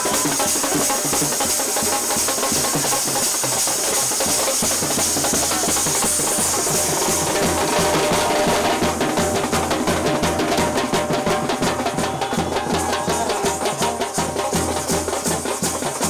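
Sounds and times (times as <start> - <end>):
bass drum beat: 4.0 - 15.8.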